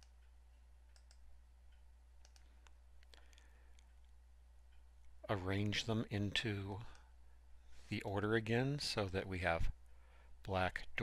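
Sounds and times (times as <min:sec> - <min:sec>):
computer mouse clicks: 0:00.0 - 0:05.8
low electrical hum: 0:00.0 - 0:11.0.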